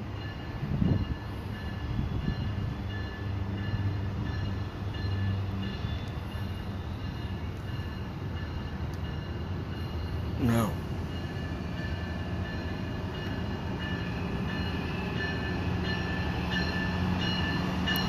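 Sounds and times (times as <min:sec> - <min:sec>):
locomotive engine drone: 0:00.0 - 0:18.0.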